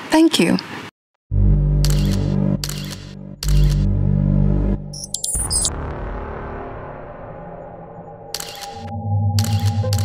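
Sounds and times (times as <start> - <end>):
low synth drone: 1.3 - 10.0
camera shutter clicks: 1.9 - 3.8.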